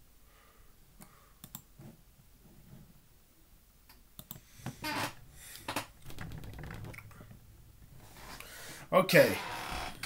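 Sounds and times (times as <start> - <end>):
computer mouse clicks: 1.0 - 1.7, 3.9 - 4.5.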